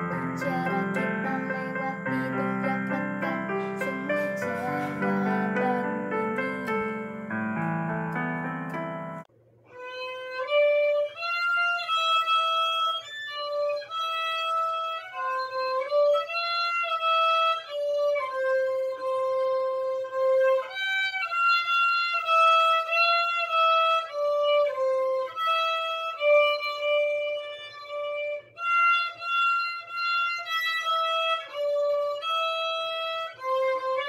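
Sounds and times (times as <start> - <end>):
electronic keyboard playing chords: 0.0 - 9.3
solo violin slow melody: 0.0 - 34.0.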